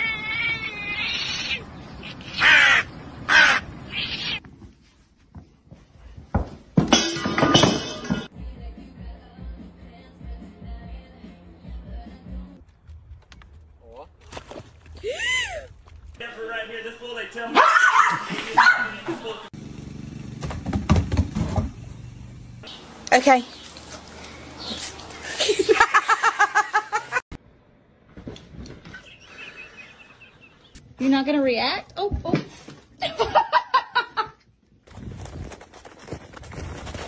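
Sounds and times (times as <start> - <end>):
crow cawing: 2.2 - 3.7
person's voice: 18.2 - 19.5.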